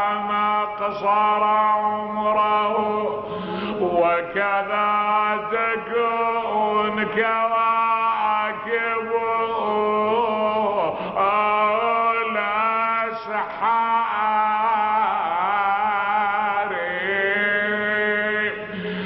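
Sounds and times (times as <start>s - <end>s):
man chanting: 0.0s - 19.0s.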